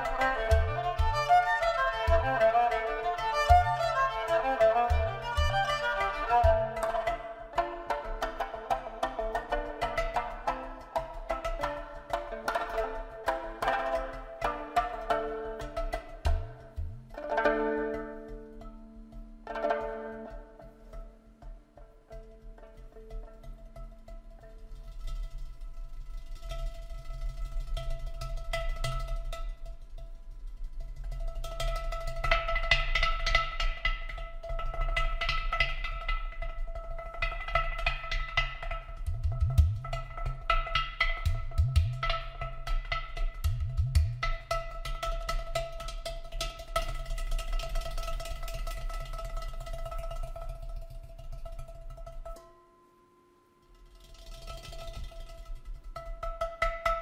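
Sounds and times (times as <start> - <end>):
hand drum taps and slaps: 0.0 - 52.6, 54.0 - 57.0.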